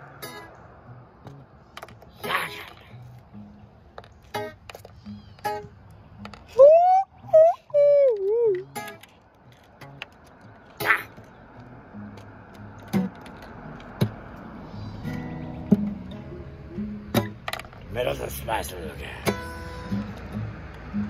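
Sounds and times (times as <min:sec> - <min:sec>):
acoustic guitar strums and plucks: 0:00.0 - 0:21.0.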